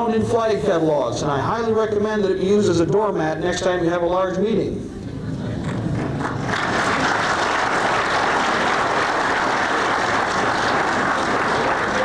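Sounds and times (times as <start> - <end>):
audience applauding: 5.5 - 12.0.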